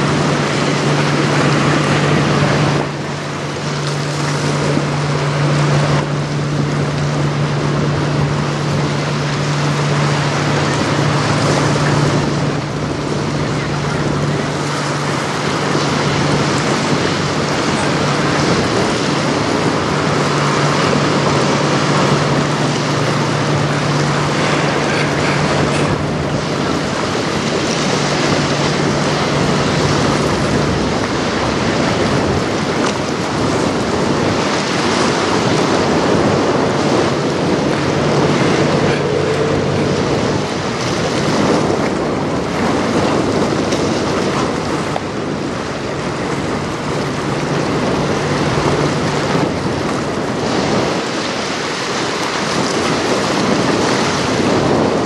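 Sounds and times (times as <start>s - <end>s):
low ship engine hum: 0.0s - 55.0s
river water rushing: 0.0s - 55.0s
wind on microphone: 0.0s - 55.0s.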